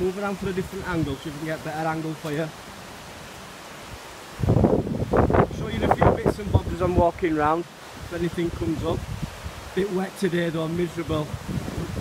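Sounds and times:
wind buffeting microphone: 0:00.0 - 0:01.8, 0:03.8 - 0:09.9, 0:10.7 - 0:12.0
flowing river water: 0:00.0 - 0:12.0.

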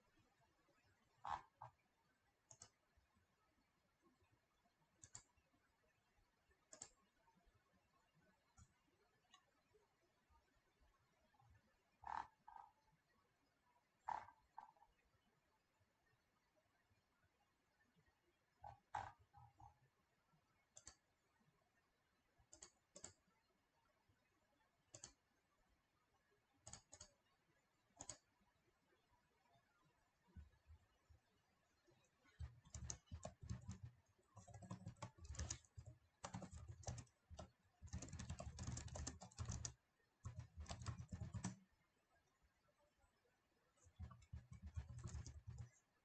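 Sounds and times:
computer keyboard typing: 0:05.0 - 0:05.3, 0:22.5 - 0:23.2, 0:24.9 - 0:25.2, 0:26.6 - 0:27.2, 0:28.0 - 0:28.3, 0:32.3 - 0:41.7, 0:43.8 - 0:45.8.

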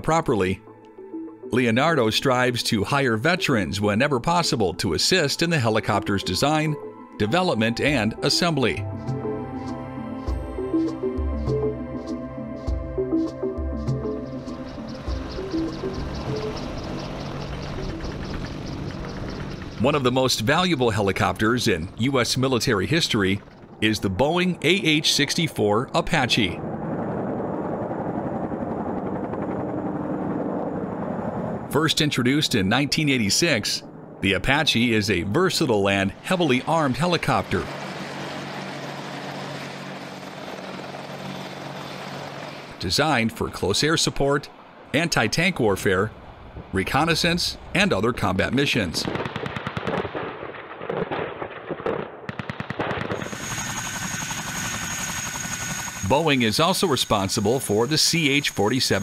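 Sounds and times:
helicopter rotors and engines droning: 0:00.0 - 0:50.2, 0:52.3 - 0:59.0
high turbine whine: 0:14.2 - 0:42.8, 0:53.2 - 0:59.0.

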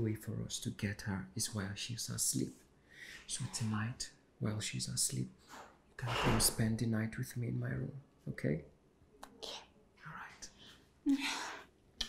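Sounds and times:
woman whispering: 0:09.2 - 0:11.5.

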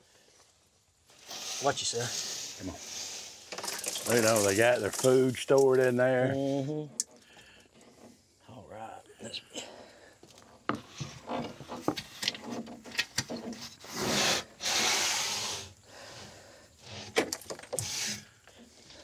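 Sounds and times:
dry debris rustling and scratching: 0:01.1 - 0:06.2.

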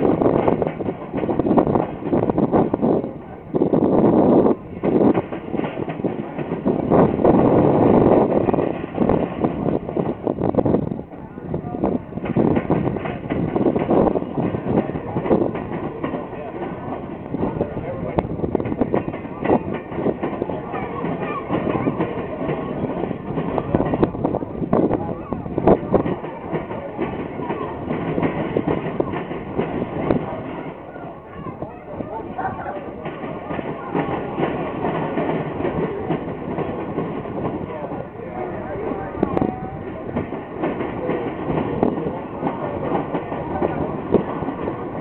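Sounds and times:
train rumble: 0:00.0 - 0:45.0
train wheels clacking on rails: 0:00.0 - 0:45.0.

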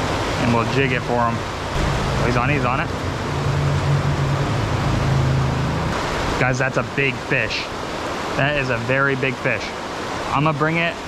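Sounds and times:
low hum: 0:00.0 - 0:07.3
river water rushing over rapids: 0:00.0 - 0:11.0.

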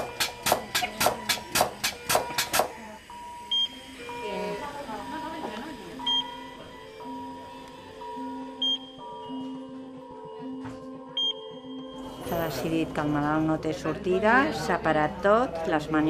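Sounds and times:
mechanical chest compression device pumping: 0:00.0 - 0:04.1
electronic monitor tones: 0:00.0 - 0:09.6.

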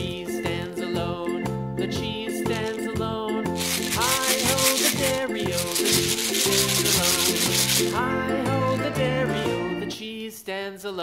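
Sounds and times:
background music: 0:00.0 - 0:10.2
plastic wrapper rustling: 0:03.6 - 0:08.0.

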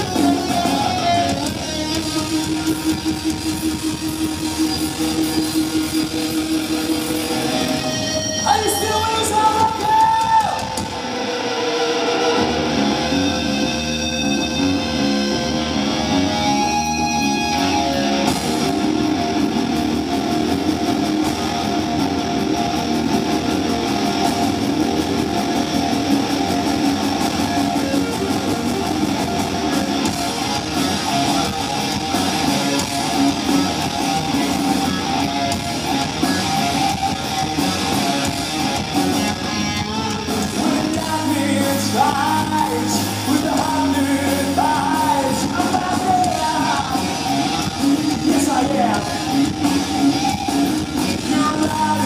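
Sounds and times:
drum kit: 0:00.0 - 0:14.7, 0:15.9 - 0:52.0
distorted electric guitar note: 0:00.0 - 0:52.0
rock band low rumble: 0:00.0 - 0:52.0.

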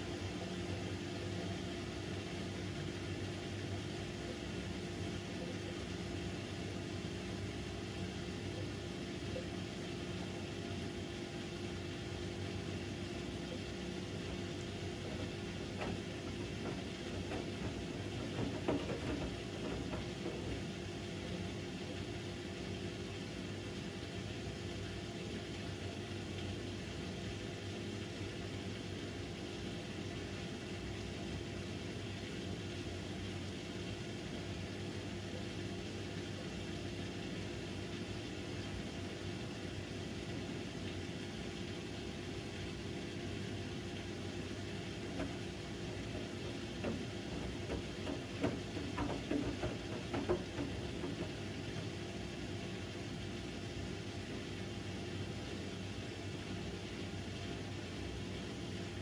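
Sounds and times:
washing machine drum humming: 0:00.0 - 0:59.0.

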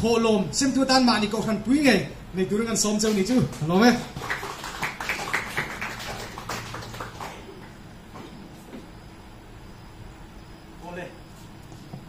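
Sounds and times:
people clapping: 0:03.1 - 0:07.8.

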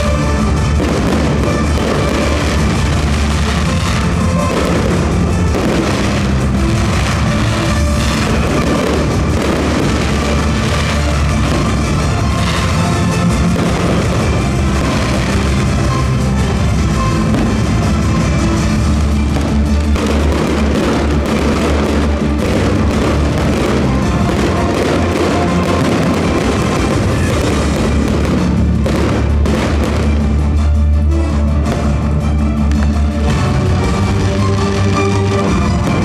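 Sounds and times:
firework bursts and crackling: 0:00.0 - 0:30.8, 0:32.7 - 0:36.0
loud show music with heavy bass: 0:00.0 - 0:36.0.

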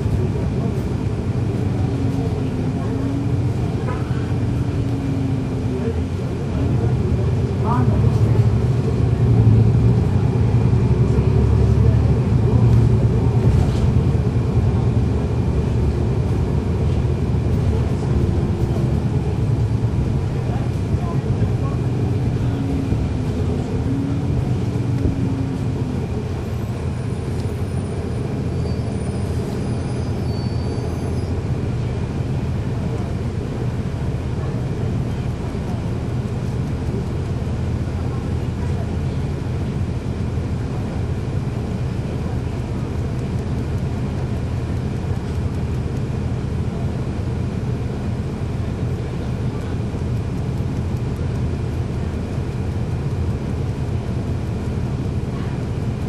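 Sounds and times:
bus diesel engine running: 0:00.0 - 0:56.0
drivetrain and road noise: 0:00.0 - 0:56.0.

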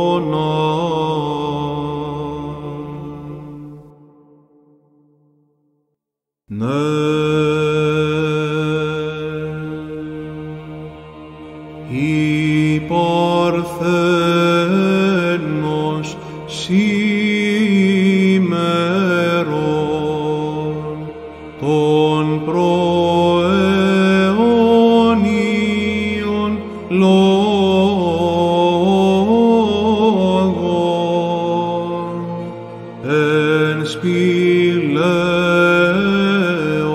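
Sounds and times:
ornamented chant melody: 0:00.0 - 0:05.7, 0:06.5 - 0:36.9
male voices holding low drone: 0:06.6 - 0:36.9.

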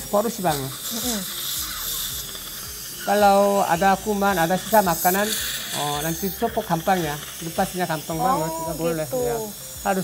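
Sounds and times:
suction hissing: 0:00.0 - 0:10.0
dental handpiece on tooth: 0:00.5 - 0:09.2.

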